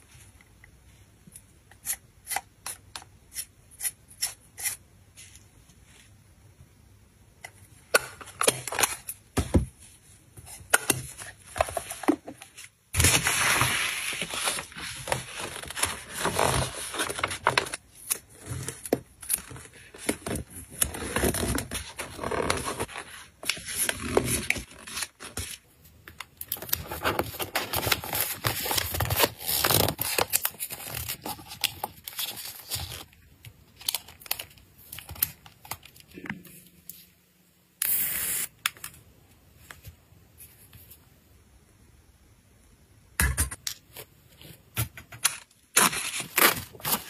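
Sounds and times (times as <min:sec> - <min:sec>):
paper wrapping rustling: 0:11.2 - 0:25.6, 0:26.5 - 0:33.2, 0:45.8 - 0:47.0
loud hiss: 0:37.8 - 0:38.6.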